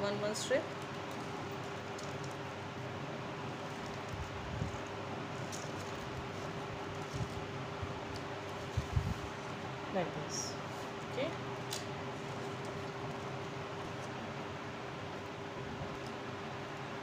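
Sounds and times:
constant low hum: 0:00.0 - 0:17.0
steady background hiss: 0:00.0 - 0:17.0.

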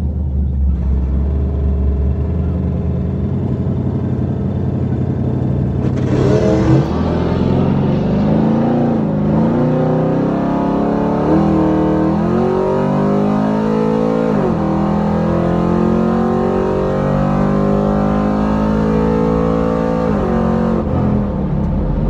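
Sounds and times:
car engine accelerating: 0:00.0 - 0:22.0.

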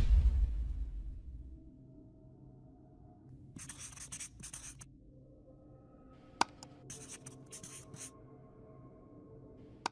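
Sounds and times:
pen scribbling handwriting: 0:03.6 - 0:04.8, 0:06.9 - 0:08.1.

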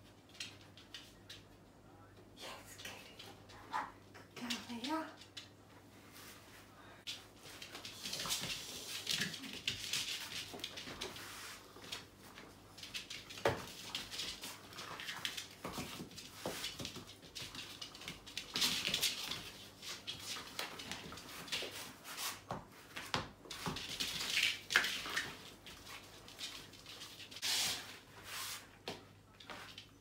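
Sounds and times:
puppy claws scrabbling on floor: 0:07.1 - 0:27.4.

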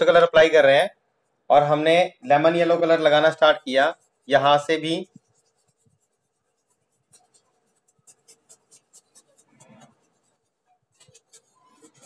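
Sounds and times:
paintbrush dabbing on paper: 0:00.0 - 0:12.0.

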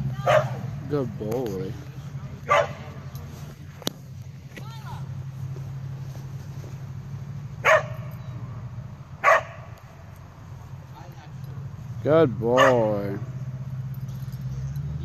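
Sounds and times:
dog barks: 0:00.2 - 0:00.7, 0:02.4 - 0:03.0, 0:07.6 - 0:08.2, 0:09.2 - 0:09.8, 0:12.5 - 0:13.0.

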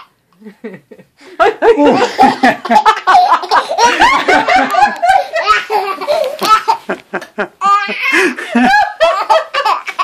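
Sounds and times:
baby laughing: 0:01.7 - 0:10.0.

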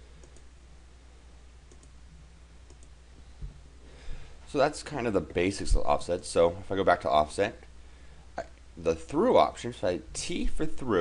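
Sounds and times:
low steady hum: 0:00.0 - 0:11.0
computer mouse clicks: 0:00.2 - 0:00.5, 0:01.7 - 0:02.0, 0:02.7 - 0:03.0.

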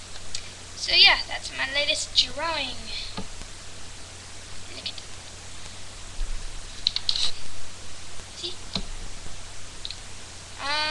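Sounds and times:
microphone hiss and hum: 0:00.0 - 0:10.9.

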